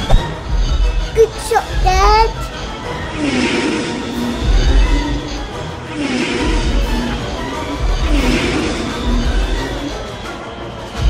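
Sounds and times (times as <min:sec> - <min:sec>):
orchestral battle music: 0:00.0 - 0:11.0.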